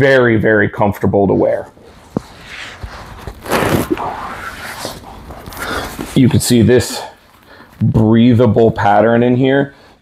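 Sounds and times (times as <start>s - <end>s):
fabric bag rustling against shirt: 1.8s - 7.8s.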